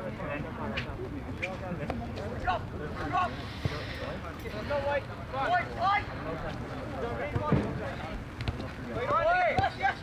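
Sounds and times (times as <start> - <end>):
open-air background noise: 0.0 - 10.0
players shouting calls: 8.9 - 10.0.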